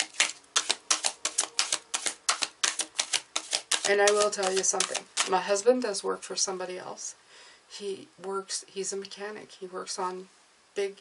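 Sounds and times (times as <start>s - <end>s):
cards being shuffled: 0.0s - 5.5s.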